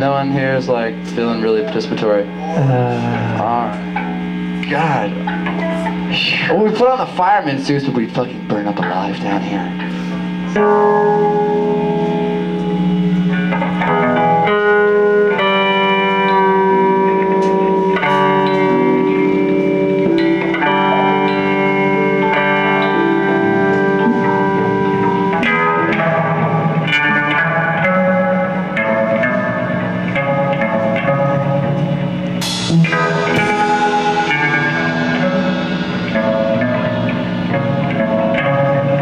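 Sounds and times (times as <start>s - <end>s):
electric guitar chords: 0.0s - 39.0s
sharp hit: 32.4s - 38.4s.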